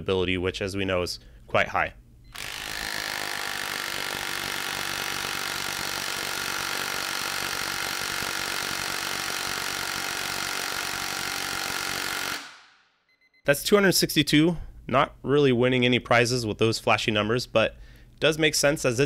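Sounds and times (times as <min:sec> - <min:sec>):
impact wrench hammering on bolt: 0:02.4 - 0:12.6.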